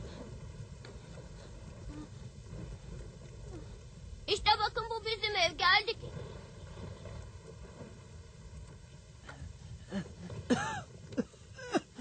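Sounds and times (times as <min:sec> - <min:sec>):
rain and wind rumble: 0:00.0 - 0:12.0.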